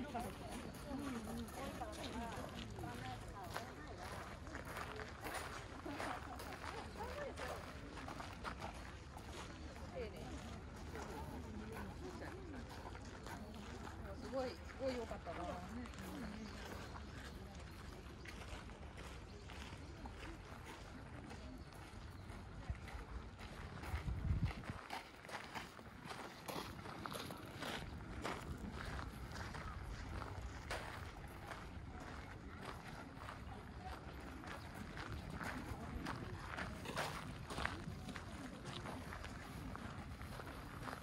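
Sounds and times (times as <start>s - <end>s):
footsteps crunching on gravel: 0.0s - 41.0s
people's voices: 0.0s - 41.0s.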